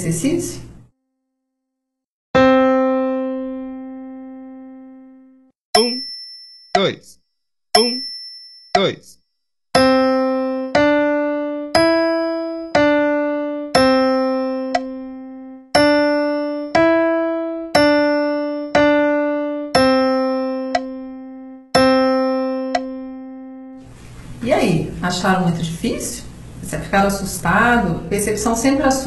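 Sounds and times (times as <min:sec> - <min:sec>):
piano playing slow melody: 0:02.4 - 0:05.6, 0:09.8 - 0:23.9.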